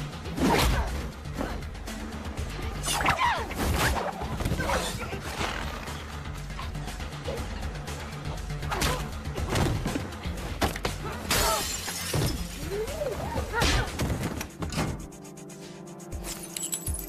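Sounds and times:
dramatic music: 0.0 - 17.0.

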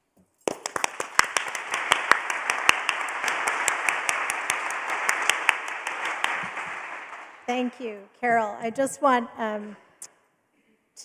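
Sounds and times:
audience applauding: 0.4 - 7.8.

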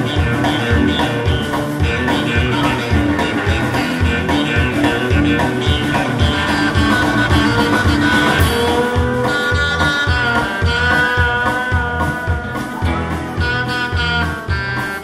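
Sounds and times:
bass: 0.0 - 15.0
electric guitar: 0.0 - 15.0
steady drum beat: 0.0 - 15.0.

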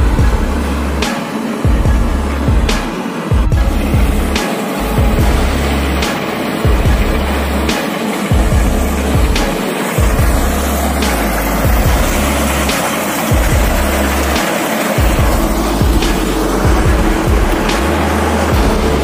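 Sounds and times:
background music with deep bass: 0.0 - 19.0.

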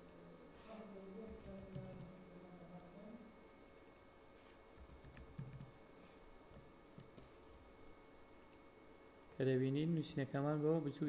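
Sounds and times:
computer keyboard typing: 1.2 - 2.1, 4.8 - 5.8.

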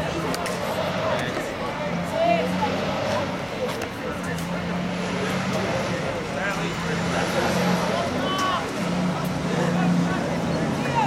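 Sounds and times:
steady outdoor noise: 0.0 - 11.0.

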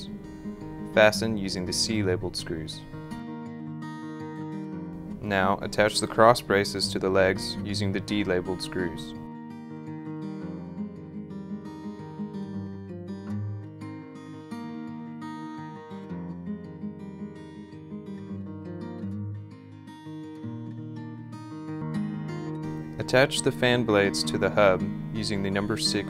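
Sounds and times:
acoustic guitar plucked and strummed: 0.0 - 26.0.

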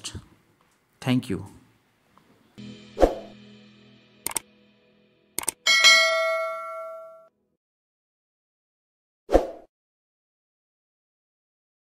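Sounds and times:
notification bell ding: 5.6 - 7.3.

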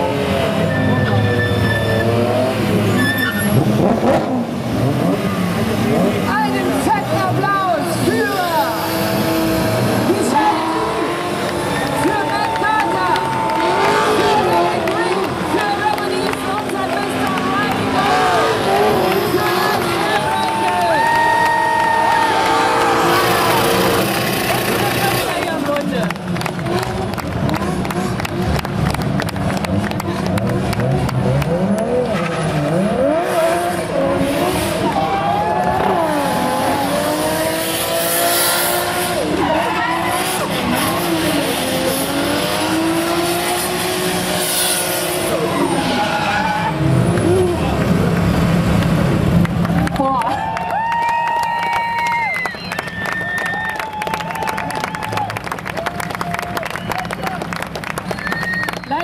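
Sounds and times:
car engines revving: 0.0 - 59.0
tyre squeals: 0.6 - 3.7, 45.2 - 47.0, 58.1 - 59.0.

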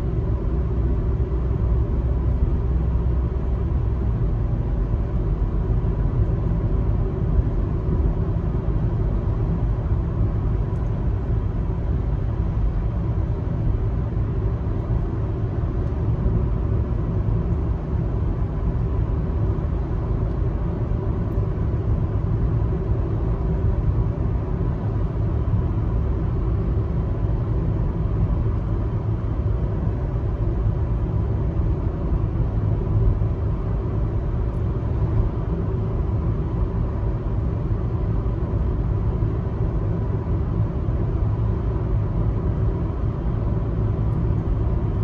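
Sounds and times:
car driving on paved road: 0.0 - 45.0.

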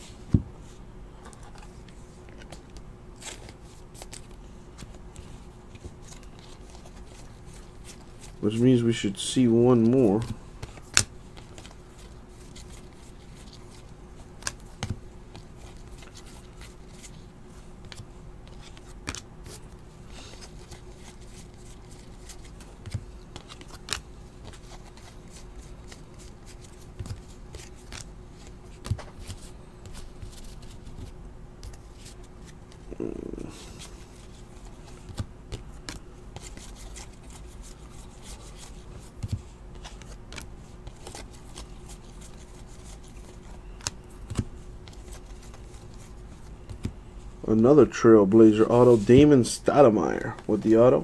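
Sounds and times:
steady low hum: 0.0 - 51.0
trading cards flipped by hand: 9.8 - 17.2, 17.8 - 32.8, 33.6 - 47.0.

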